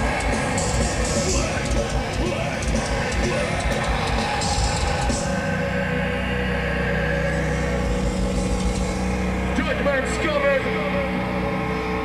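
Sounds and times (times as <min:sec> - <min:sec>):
amplifier feedback drone: 0:00.0 - 0:12.0.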